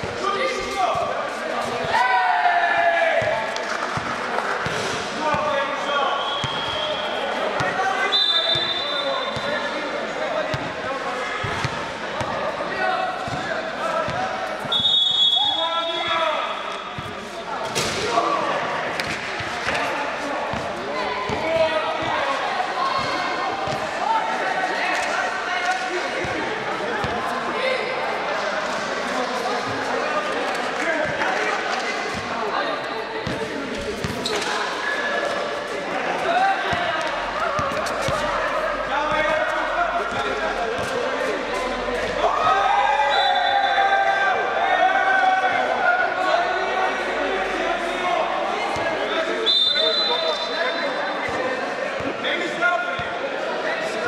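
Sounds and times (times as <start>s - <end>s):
players calling out: 32.1s - 51.4s.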